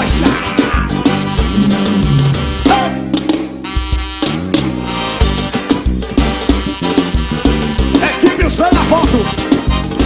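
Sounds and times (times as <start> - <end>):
live band playing: 0.0 - 10.0
heavy drum hit: 1.4 - 3.6.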